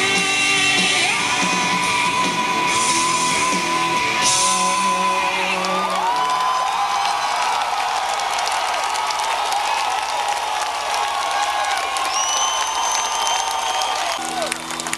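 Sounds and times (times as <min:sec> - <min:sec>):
audience applauding and cheering: 0:00.1 - 0:14.9
long whistle from crowd: 0:12.0 - 0:14.2.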